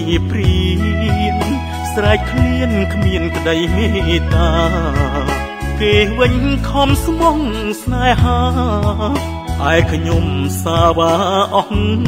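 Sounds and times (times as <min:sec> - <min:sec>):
man singing: 0:00.0 - 0:12.0
pop backing music with bass: 0:00.0 - 0:12.0.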